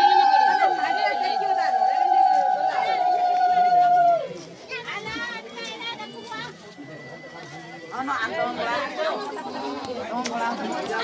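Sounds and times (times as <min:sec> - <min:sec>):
women ululating: 0:00.0 - 0:04.3
background voices and chatter: 0:00.0 - 0:11.0.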